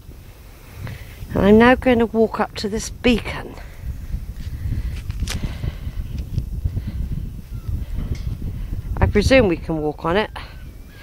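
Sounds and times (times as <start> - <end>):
low uneven rumble: 0.0 - 11.0
footsteps walking: 4.3 - 6.5.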